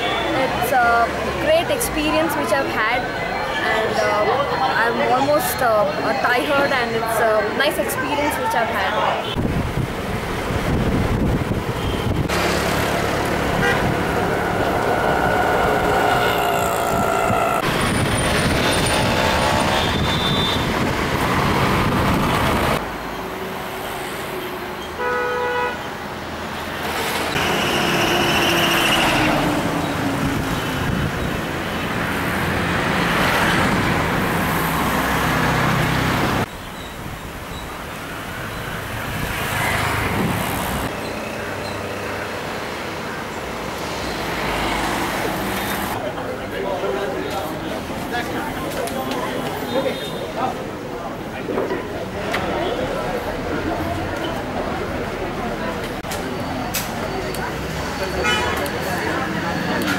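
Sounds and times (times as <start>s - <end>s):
scooters and cars passing: 0.0s - 59.9s.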